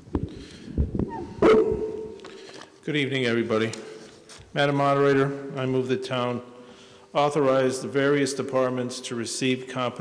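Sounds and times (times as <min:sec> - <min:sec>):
microphone handling noise: 0:00.0 - 0:02.3.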